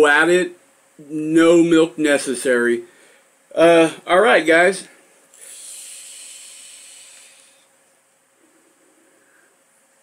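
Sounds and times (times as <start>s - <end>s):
e-cigarette vape draw hiss: 5.3s - 7.7s.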